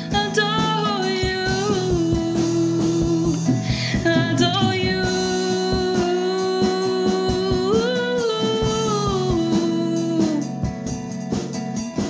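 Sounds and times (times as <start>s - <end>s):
woman singing worship song: 0.0s - 10.7s
drum kit: 0.0s - 12.0s
strummed acoustic guitar: 0.0s - 12.0s.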